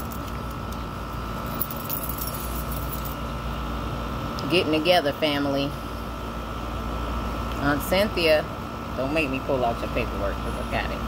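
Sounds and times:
faint steady whine: 0.0s - 11.0s
low room hum: 0.0s - 11.0s.

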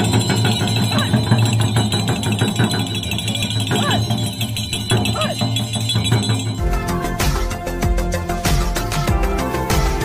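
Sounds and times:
hand bells ringing: 0.0s - 7.6s
frame drums beaten quickly: 0.0s - 8.1s.

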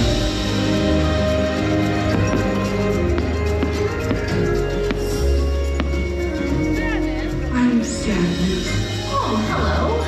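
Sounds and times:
fireworks popping: 1.8s - 6.4s.

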